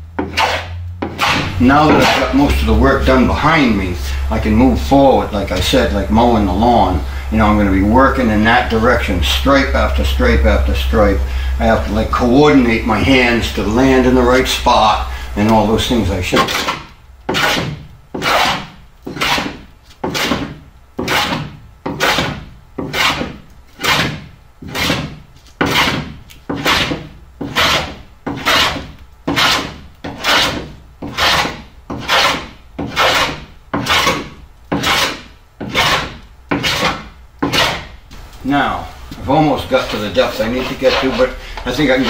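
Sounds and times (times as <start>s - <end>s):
hand plane shaving wood: 0.2s - 6.8s, 14.7s - 37.9s, 39.3s - 42.0s.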